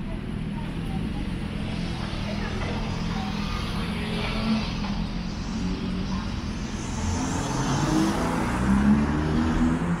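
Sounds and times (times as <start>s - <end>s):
vehicle engine running: 0.0s - 8.9s
low traffic rumble: 0.0s - 10.0s.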